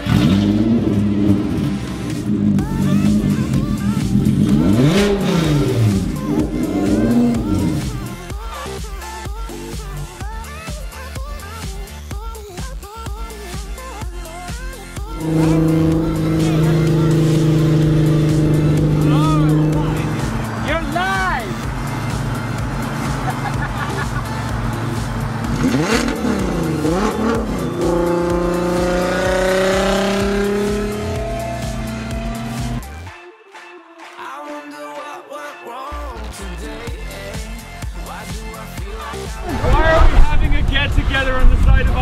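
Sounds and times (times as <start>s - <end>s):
car engine accelerating: 0.0s - 8.2s, 15.1s - 32.9s, 39.2s - 42.0s.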